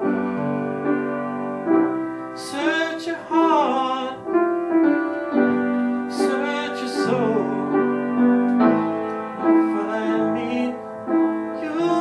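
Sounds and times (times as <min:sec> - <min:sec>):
piano chords: 0:00.0 - 0:12.0
man singing: 0:02.4 - 0:04.7, 0:06.1 - 0:08.3, 0:09.4 - 0:12.0.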